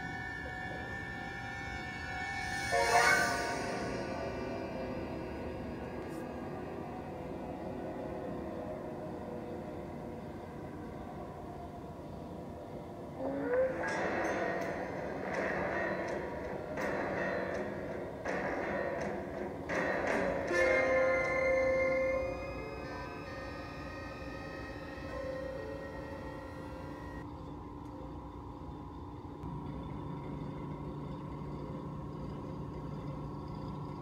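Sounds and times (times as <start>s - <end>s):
dark droning score: 0.0s - 34.0s
sharp hits: 13.9s - 24.2s.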